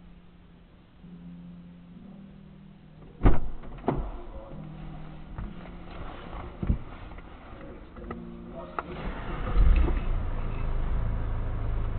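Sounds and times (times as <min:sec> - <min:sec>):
low steady hum: 0:00.0 - 0:11.9
loud thumps: 0:03.2 - 0:04.2.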